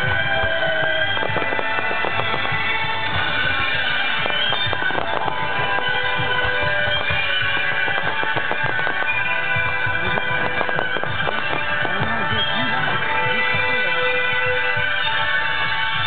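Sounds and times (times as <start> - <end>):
fireworks popping and banging: 0.0 - 16.0
music playing: 0.0 - 16.0.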